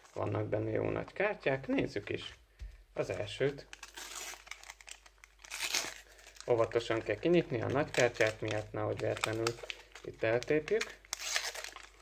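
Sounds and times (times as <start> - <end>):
foil wrapper crinkling: 3.2 - 12.0
wrapper ripping: 3.2 - 12.0.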